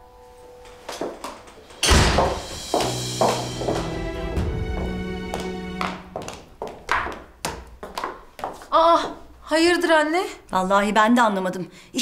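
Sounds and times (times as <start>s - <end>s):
loud thud: 1.8s - 2.8s
dramatic background music: 1.8s - 6.2s.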